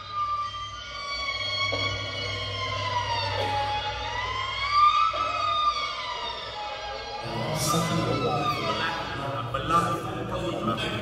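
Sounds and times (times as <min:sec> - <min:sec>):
low steady drone: 0:06.0 - 0:11.0.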